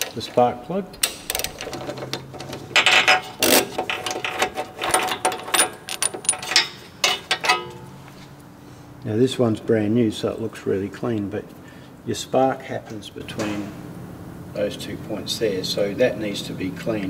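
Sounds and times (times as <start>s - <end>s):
metal clinks: 1.3s - 8.0s.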